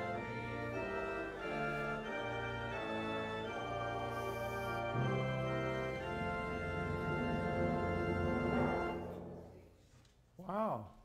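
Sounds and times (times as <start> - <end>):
organ playing held chords: 0.0 - 9.5.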